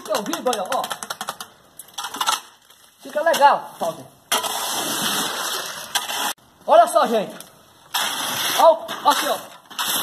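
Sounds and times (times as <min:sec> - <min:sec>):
shovel clicking and rattling in concrete: 0:00.0 - 0:02.6.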